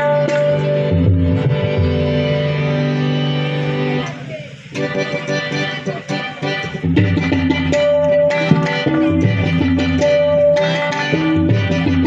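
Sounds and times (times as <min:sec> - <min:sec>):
guitar-like string melody: 0:00.0 - 0:12.0
tabla: 0:00.0 - 0:12.0
bass drum gliding in pitch: 0:08.4 - 0:10.0.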